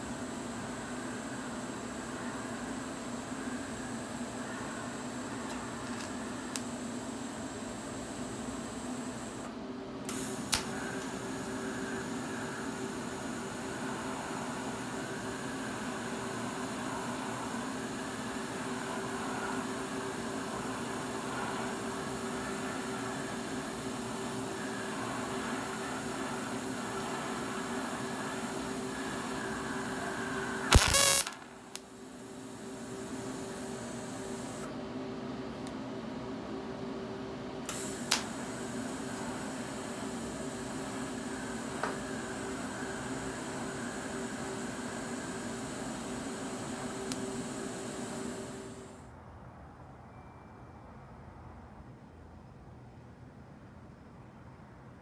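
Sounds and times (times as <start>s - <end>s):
welding arc hissing buzz: 0.0s - 9.5s, 10.1s - 34.7s, 37.7s - 49.1s.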